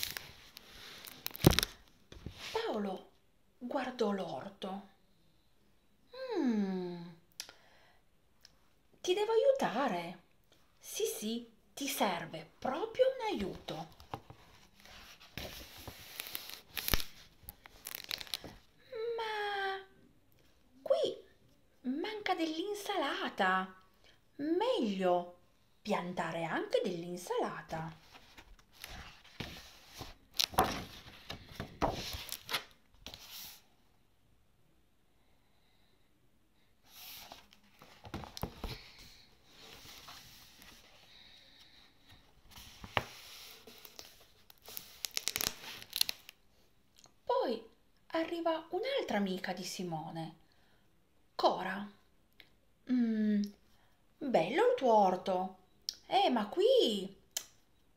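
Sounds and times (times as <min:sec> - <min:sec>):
wrapper crinkling: 0:00.0 - 0:01.8, 0:15.9 - 0:18.6, 0:43.7 - 0:46.4
paper rustling: 0:00.0 - 0:02.6, 0:13.9 - 0:18.6, 0:28.0 - 0:33.6, 0:42.1 - 0:46.4.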